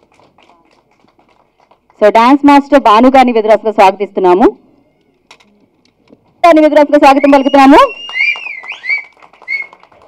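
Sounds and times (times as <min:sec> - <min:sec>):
people clapping: 0:00.0 - 0:02.2, 0:07.5 - 0:10.0.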